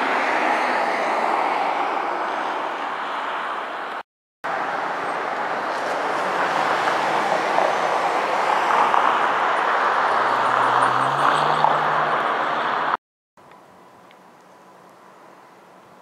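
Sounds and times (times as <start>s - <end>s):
rush of passing vehicles: 0.0s - 13.0s.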